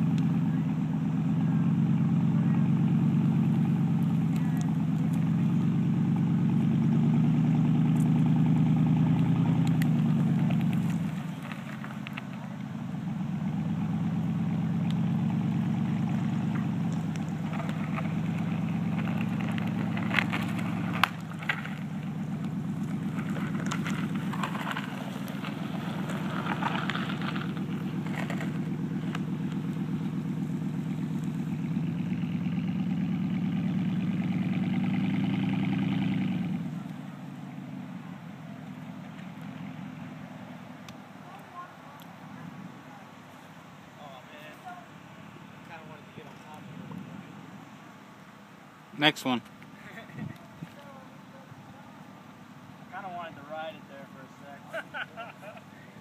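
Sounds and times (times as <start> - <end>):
truck engine pulling under load: 0.0 - 41.3
tree trunk dragging across ground: 16.1 - 30.2.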